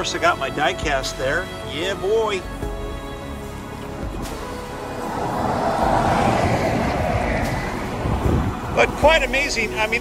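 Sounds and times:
background music: 0.0s - 10.0s
passing vehicle road noise: 3.3s - 10.0s.

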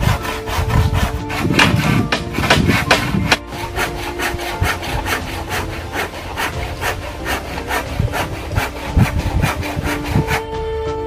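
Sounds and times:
knife scraping wooden pole: 0.0s - 10.6s.

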